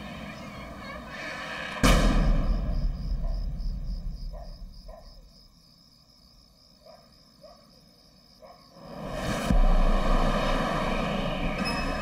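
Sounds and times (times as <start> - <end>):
insects chirping: 0.0 - 9.5
low rumble: 8.8 - 12.0.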